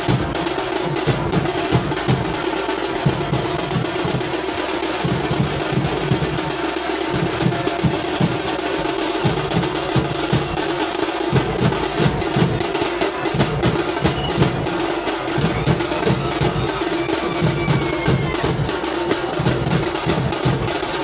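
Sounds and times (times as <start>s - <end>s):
drums beating: 0.0s - 21.0s.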